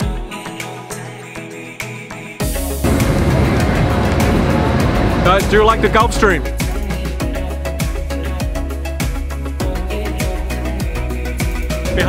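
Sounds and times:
background music: 0.0 - 12.0
machinery rumble and hiss: 2.8 - 6.8.

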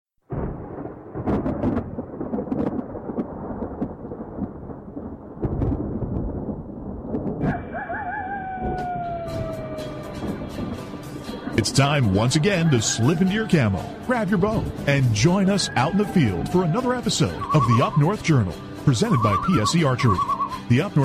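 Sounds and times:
thunder rumbling with crackles: 0.2 - 21.0.

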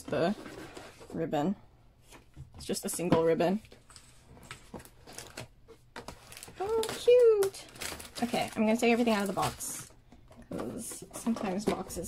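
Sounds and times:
paper and cardboard rustling: 2.1 - 12.0.

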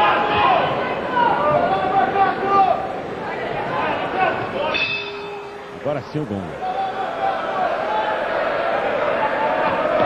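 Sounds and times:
arena crowd noise: 0.0 - 10.0
man talking: 5.8 - 6.6.

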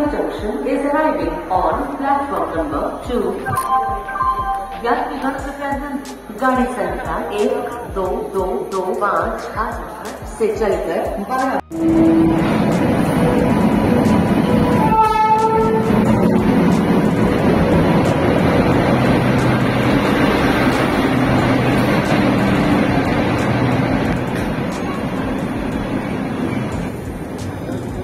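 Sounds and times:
train wheels rumbling: 11.7 - 28.0
train horn blast: 14.4 - 16.6.

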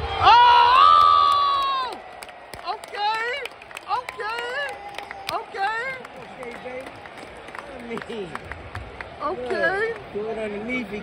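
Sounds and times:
hand claps: 2.2 - 10.1
spectators talking: 2.5 - 11.0.

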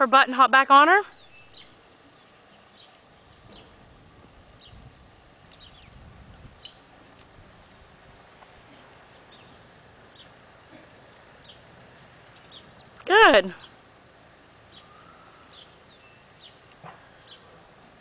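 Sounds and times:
high bird chirps: 14.7 - 16.6.

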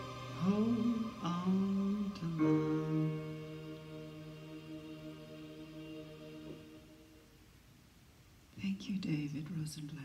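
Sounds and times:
person speaking softly into microphone: 8.5 - 10.0.

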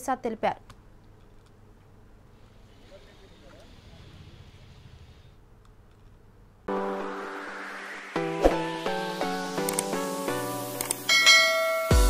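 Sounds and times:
background music with pitched notes: 6.7 - 12.0
bright bell chime: 11.1 - 12.0.

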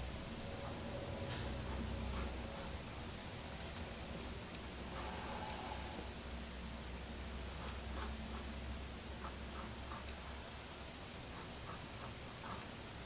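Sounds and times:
pencil scratching on paper: 11.0 - 12.8.

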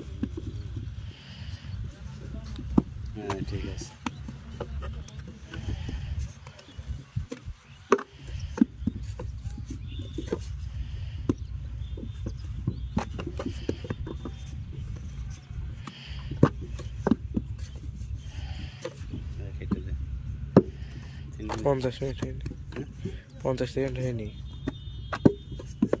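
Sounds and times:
wooden moulds knocking on ground: 0.0 - 26.0
dull knocks: 24.3 - 26.0.

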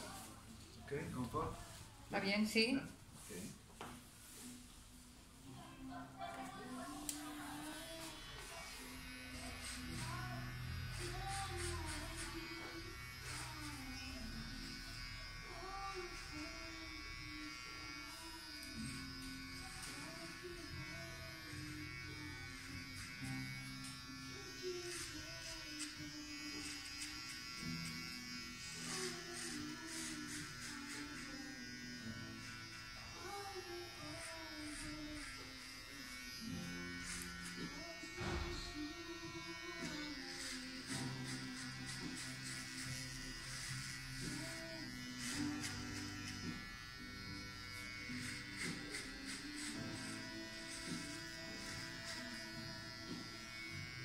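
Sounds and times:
electric hair clippers buzzing: 6.6 - 54.0.

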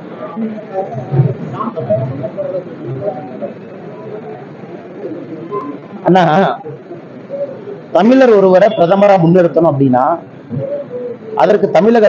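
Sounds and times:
man speaking into microphones: 7.9 - 10.3, 11.4 - 12.0.

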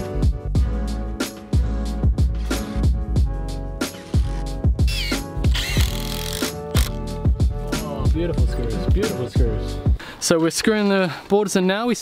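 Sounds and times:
background music with steady beat: 0.0 - 10.5.

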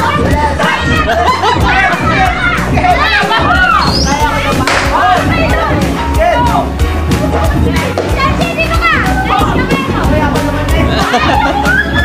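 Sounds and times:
excited shouts and chatter: 0.0 - 12.0
loud music with steady bass: 0.0 - 12.0.

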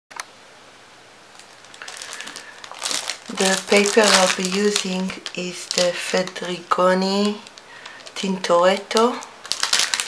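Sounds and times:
faint steady hiss: 0.2 - 10.0.

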